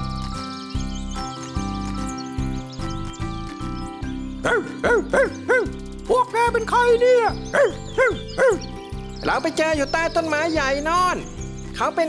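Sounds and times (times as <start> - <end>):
light background music: 0.0 - 12.0
dog barking: 4.4 - 5.7, 7.5 - 8.6.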